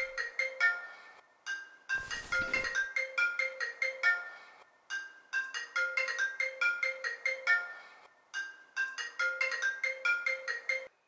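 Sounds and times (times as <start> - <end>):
phone marimba ring tone: 5.4 - 10.9.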